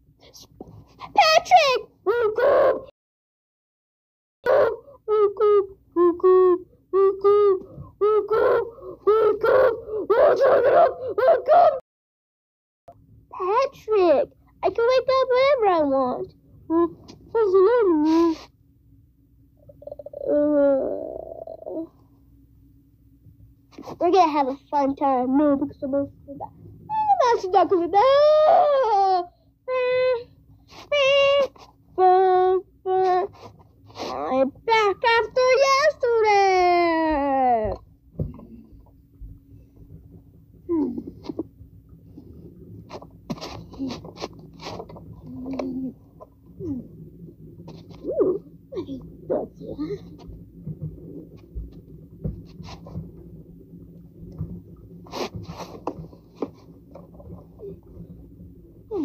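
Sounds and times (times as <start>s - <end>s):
child making monster call: 1.1s - 2.9s, 4.5s - 11.8s, 19.6s - 21.9s.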